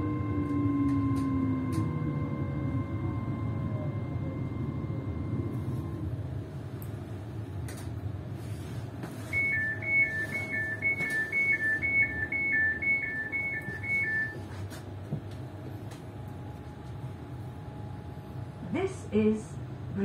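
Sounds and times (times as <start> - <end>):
electric train hum: 0.0 - 20.0
two-tone door warning beep: 9.2 - 14.5.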